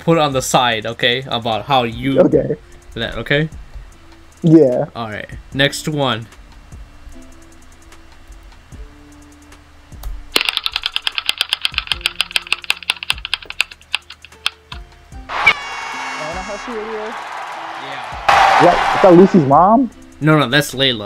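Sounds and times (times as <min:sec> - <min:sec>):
spinning wheel ticking: 0:10.4 - 0:14.8
recorded crowd cheering: 0:15.3 - 0:19.7.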